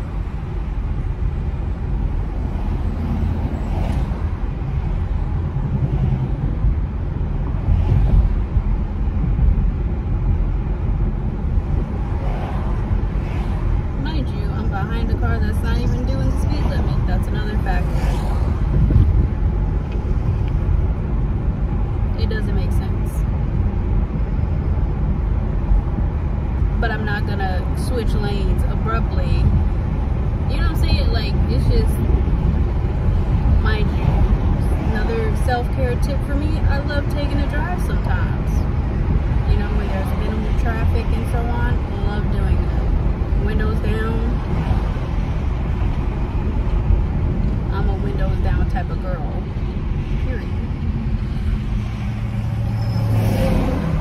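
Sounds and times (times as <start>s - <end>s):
car road and engine noise: 0.0s - 54.0s.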